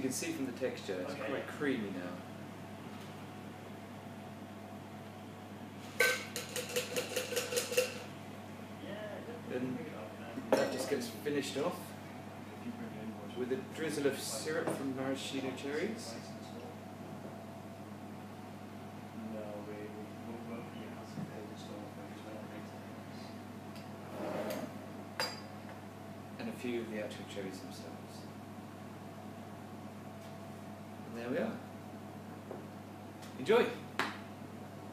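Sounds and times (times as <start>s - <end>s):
spoon clinking against glass: 6.0s - 8.0s
metal shaker tin tapping: 6.0s - 8.1s
spoon scraping in glass jar: 6.3s - 8.0s.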